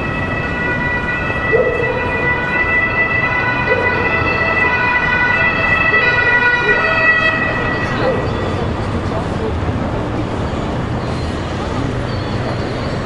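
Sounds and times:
street noise: 0.0s - 13.0s.

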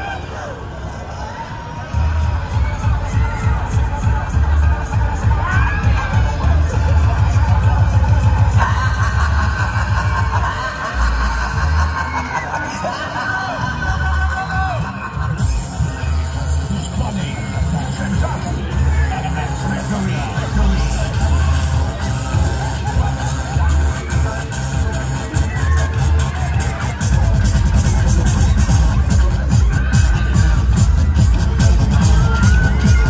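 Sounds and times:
loud music with pulsing bass: 1.8s - 33.0s
riders shouting and screaming: 28.7s - 33.0s.

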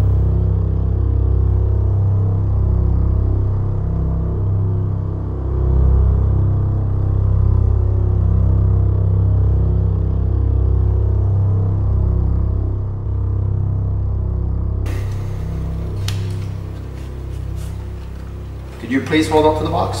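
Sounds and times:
dark background music: 0.0s - 20.0s.

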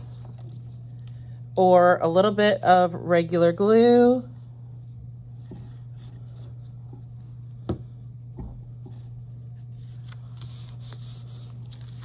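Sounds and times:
steady low hum: 0.0s - 12.0s
paper rustling: 9.6s - 12.0s.

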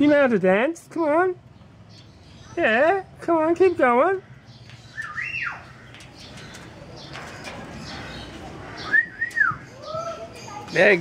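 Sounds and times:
faint scratching and rustling: 5.8s - 8.8s.

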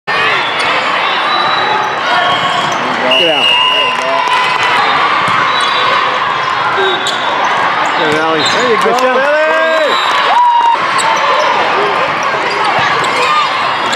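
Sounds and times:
echoing voices in a hall: 0.1s - 13.9s
people shouting: 0.1s - 13.9s
volleyballs hit and bouncing: 4.0s - 9.3s, 10.1s - 13.9s.

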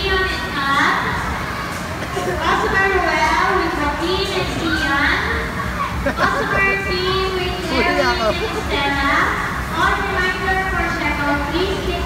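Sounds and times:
children's voices and chatter: 0.0s - 12.0s
people talking: 2.0s - 12.0s.

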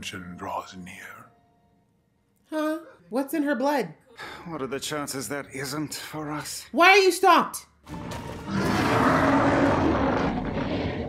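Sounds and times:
monster roaring: 8.5s - 11.0s.

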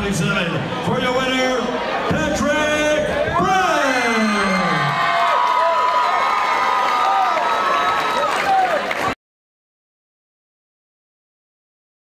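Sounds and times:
crowd cheering and shouting: 0.1s - 9.2s.

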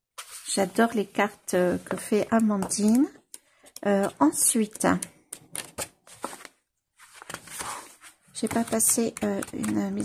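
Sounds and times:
paper pages rustling: 0.2s - 0.7s, 5.4s - 10.0s.

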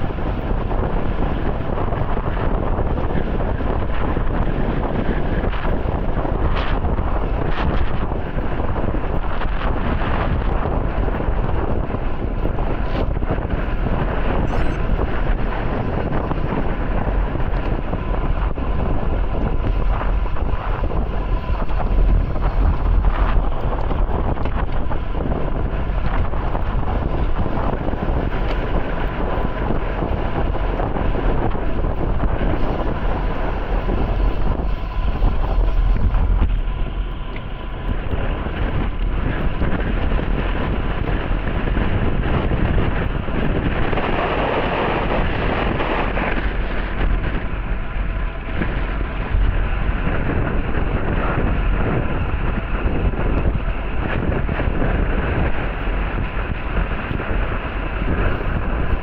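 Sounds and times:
wind noise on microphone: 0.0s - 59.0s.

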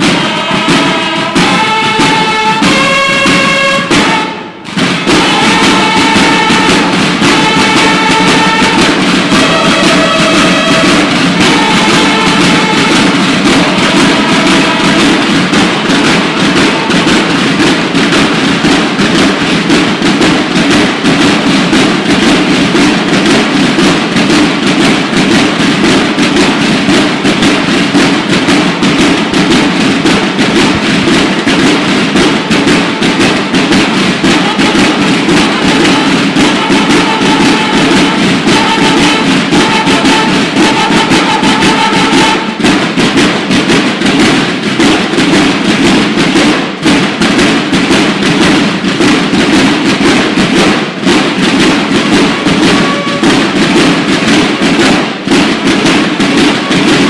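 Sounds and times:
held bugle notes: 0.0s - 45.4s, 51.7s - 57.0s
drum line playing field drums: 0.0s - 57.0s.

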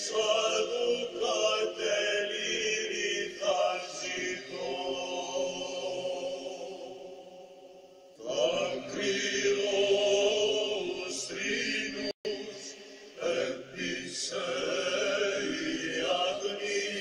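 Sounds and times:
chant in long held notes: 0.0s - 17.0s.

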